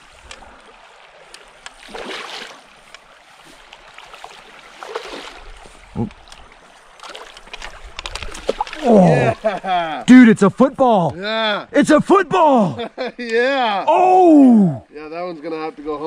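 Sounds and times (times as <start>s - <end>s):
creek flowing: 0.0s - 16.0s
fish splashing in water: 1.7s - 9.5s.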